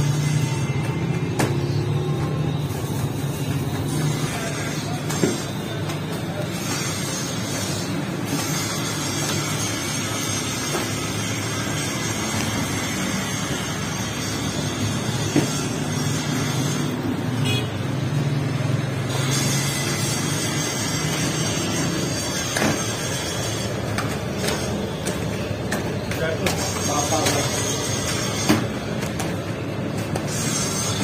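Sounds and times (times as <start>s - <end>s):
oven burner humming and rushing: 0.0s - 31.0s.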